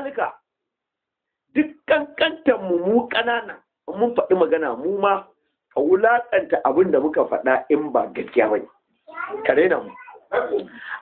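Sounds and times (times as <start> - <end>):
man speaking: 1.5 - 11.0.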